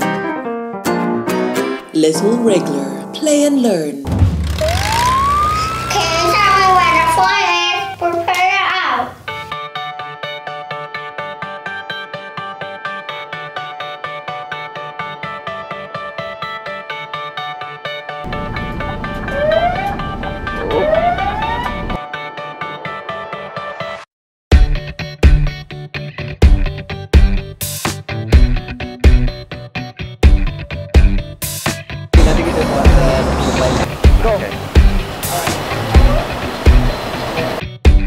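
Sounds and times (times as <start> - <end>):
background music: 0.0 - 8.4, 9.2 - 24.0, 24.6 - 38.0
fire engine siren wailing: 4.6 - 7.9, 18.3 - 22.0, 32.2 - 33.9
low engine rumble: 18.3 - 22.0, 32.2 - 37.6.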